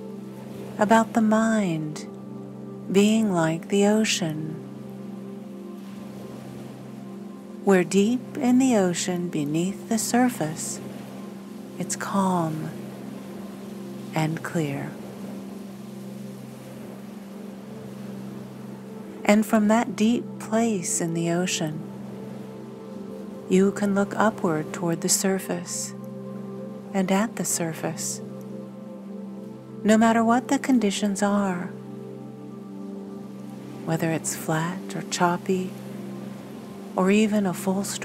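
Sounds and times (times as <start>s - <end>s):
sustained music pad drone: 0.0s - 38.0s.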